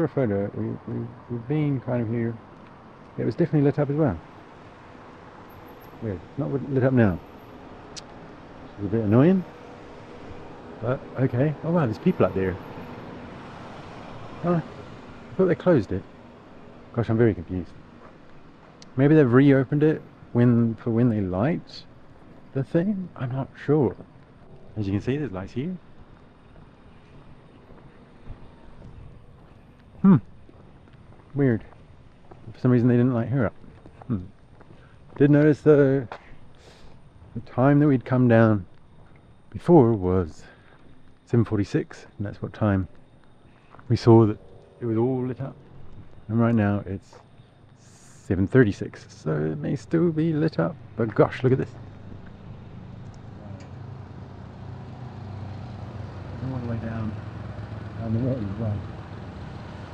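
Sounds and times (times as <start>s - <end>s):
low vehicle hum: 0.0s - 59.9s.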